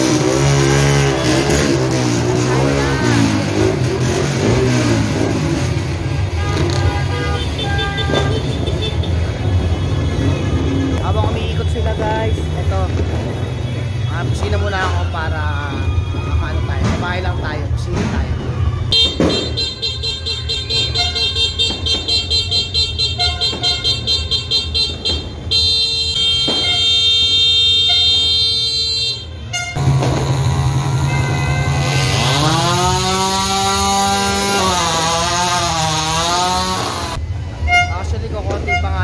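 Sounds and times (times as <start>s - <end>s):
engine revving: 0.0s - 6.9s, 29.7s - 37.2s
motorcycle horn blasts: 6.3s - 9.2s, 18.9s - 29.8s, 31.0s - 32.4s, 37.7s - 38.0s.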